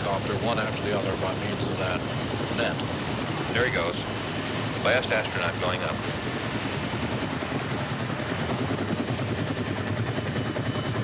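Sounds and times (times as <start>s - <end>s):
helicopter hovering: 0.0s - 11.0s.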